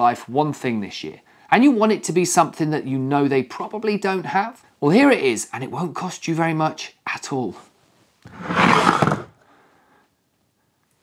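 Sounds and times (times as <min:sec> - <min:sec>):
wood scraping on wood: 0:08.3 - 0:09.3.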